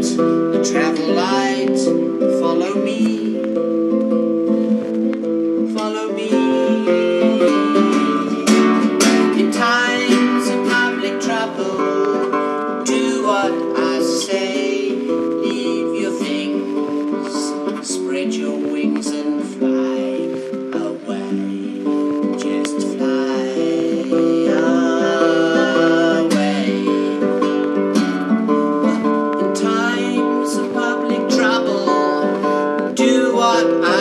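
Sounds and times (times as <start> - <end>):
classical guitar strummed: 0.0 - 34.0.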